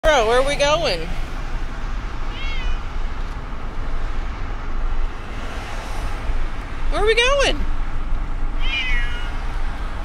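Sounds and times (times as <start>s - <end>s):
steady rumbling: 0.0s - 5.5s.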